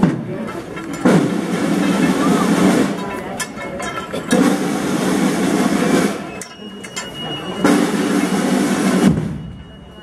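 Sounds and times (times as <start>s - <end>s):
outdoor street noise: 0.0s - 10.0s.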